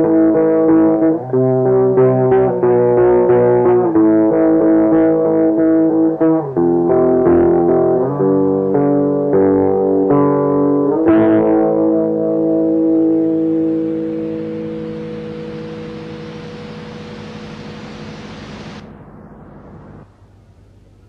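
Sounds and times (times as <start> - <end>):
metal guitar chords: 0.0 - 20.1
recording hiss: 12.9 - 21.0.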